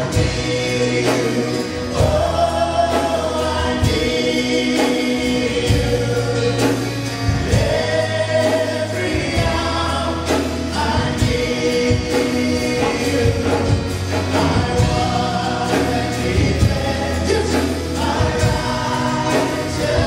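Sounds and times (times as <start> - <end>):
singers singing together: 0.0 - 20.0
worship band playing: 0.0 - 20.0.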